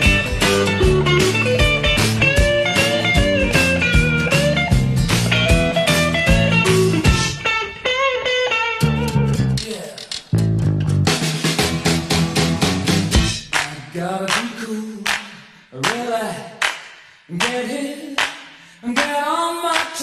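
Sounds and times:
bass and drums backing: 0.0 - 7.6, 8.4 - 13.9
rockabilly electric guitar solo: 0.0 - 13.3.

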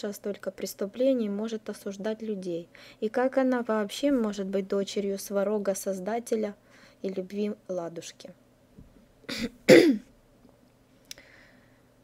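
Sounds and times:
woman clearing her throat: 9.3 - 10.1.

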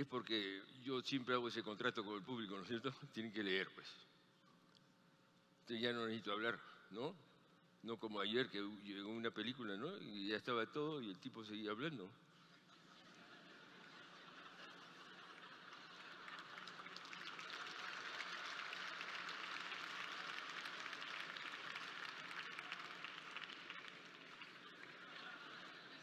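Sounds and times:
audience applauding: 14.4 - 26.0.

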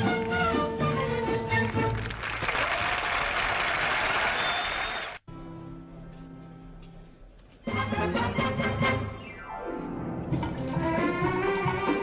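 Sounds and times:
audience applauding: 1.6 - 5.2
orchestra playing: 7.7 - 12.0.

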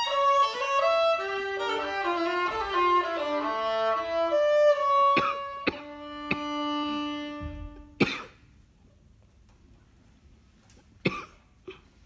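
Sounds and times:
person coughing: 5.2 - 6.5, 8.0 - 8.4, 11.0 - 12.0.

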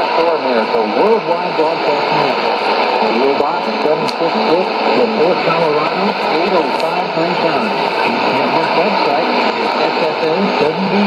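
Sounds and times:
radio speech: 0.0 - 11.0
static hiss: 0.0 - 11.0.

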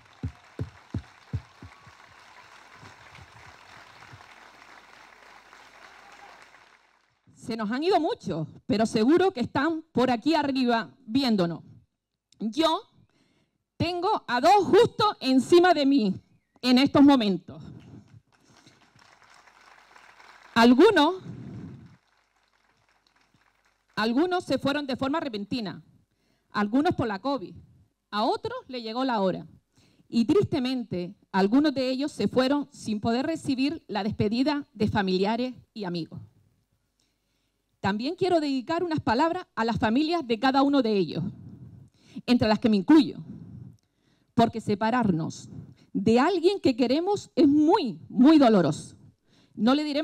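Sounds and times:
close thudding hand claps: 0.0 - 6.8
crowd applauding: 0.0 - 7.2, 18.3 - 24.0
woman's amplified voice: 7.4 - 11.6, 13.8 - 17.8, 20.6 - 21.4, 24.0 - 25.8, 26.6 - 27.6, 30.2 - 36.2, 37.8 - 41.4, 42.2 - 43.3, 44.4 - 48.9, 49.6 - 50.0.

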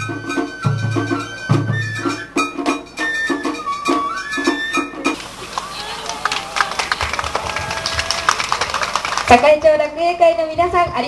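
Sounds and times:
faint murmuring voices: 5.0 - 9.6
audience clapping: 5.2 - 9.9.

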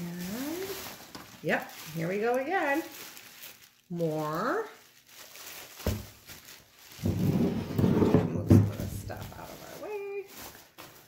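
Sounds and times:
plastic wrapping rustling: 0.0 - 11.0.

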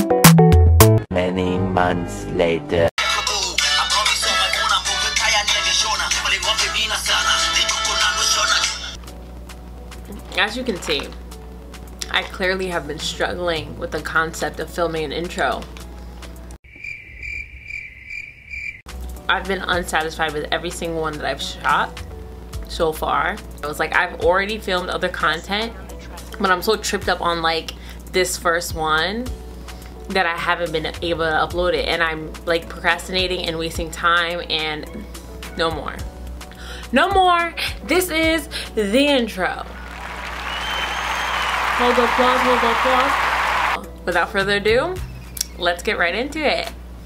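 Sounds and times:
crickets chirping: 16.6 - 18.9
crowd applause: 39.7 - 43.8.

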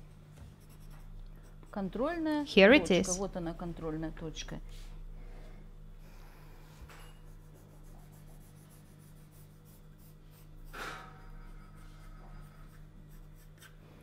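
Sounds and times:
pencil scratching on paper: 0.0 - 2.3, 7.2 - 13.8.

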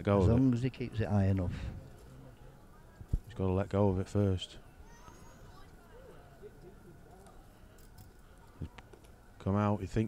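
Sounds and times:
murmur of distant voices: 0.0 - 10.0.

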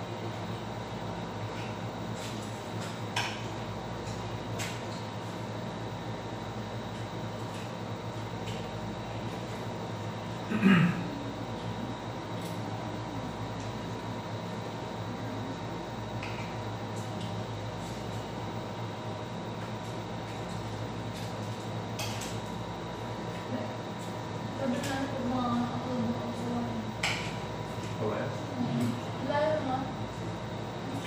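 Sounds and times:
steady room hum: 0.0 - 31.0.

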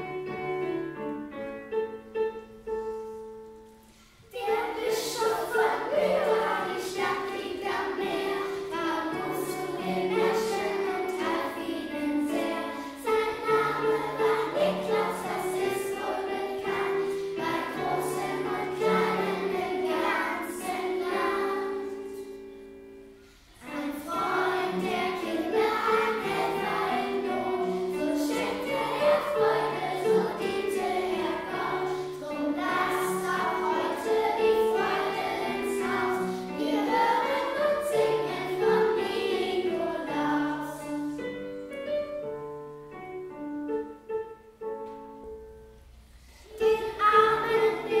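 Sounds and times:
children's choir singing: 1.8 - 44.3, 46.2 - 48.0.

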